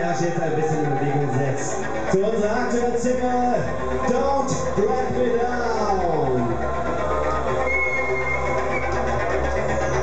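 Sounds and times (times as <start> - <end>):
low bass drone: 0.0 - 10.0.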